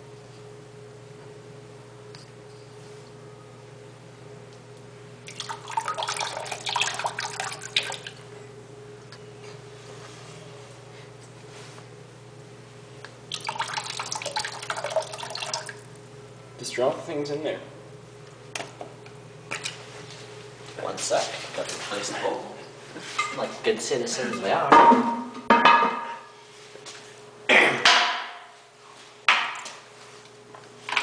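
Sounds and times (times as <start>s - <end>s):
steady low hum: 0.0s - 31.0s
liquid splashing and trickling into water: 5.2s - 8.2s, 13.3s - 15.9s.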